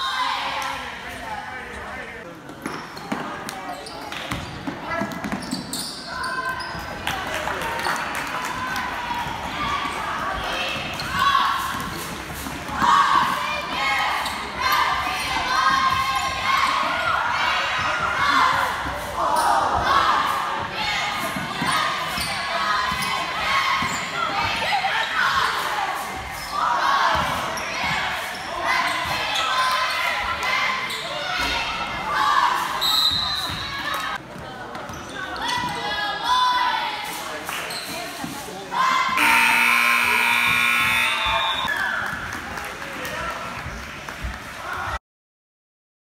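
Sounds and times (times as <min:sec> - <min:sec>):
scoreboard horn: 0:39.2 - 0:41.7.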